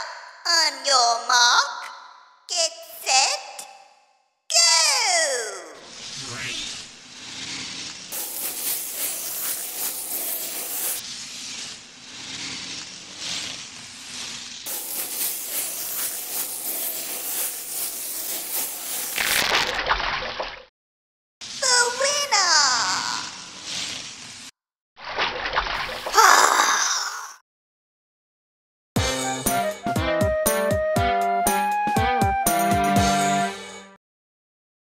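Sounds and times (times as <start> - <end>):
skates scraping and swishing: 5.8 - 19.8, 23.2 - 24.5
falling glide effect: 5.9 - 7.9
splashing: 19.2 - 20.6, 25.0 - 26.2.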